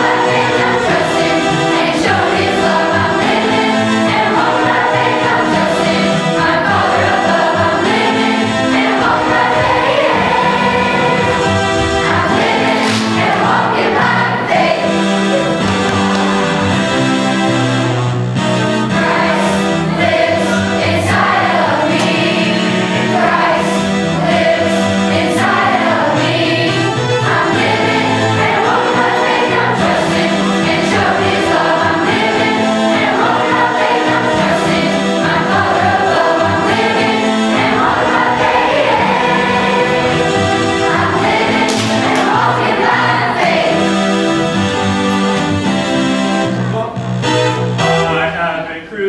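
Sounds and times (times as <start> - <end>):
children's choir singing: 0.0 - 46.4
instrumental accompaniment: 0.0 - 49.0.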